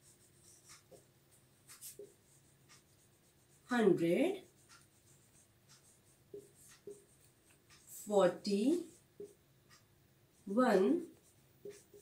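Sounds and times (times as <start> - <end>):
marker pen scratching whiteboard: 0.0 - 12.0.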